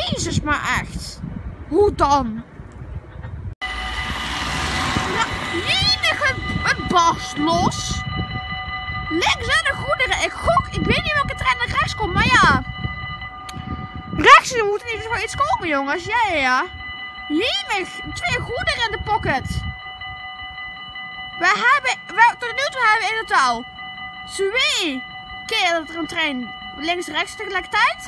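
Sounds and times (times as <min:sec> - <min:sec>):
low rumble: 0:03.6 - 0:21.4
level-crossing warning bell: 0:03.6 - 0:28.0.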